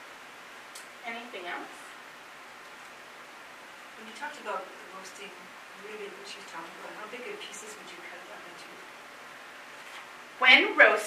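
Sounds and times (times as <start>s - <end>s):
faint room tone hiss: 0.0s - 11.0s.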